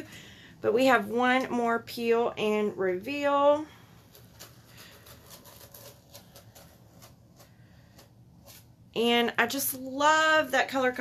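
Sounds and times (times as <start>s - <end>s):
sticky stencil peeling off: 4.0s - 8.7s.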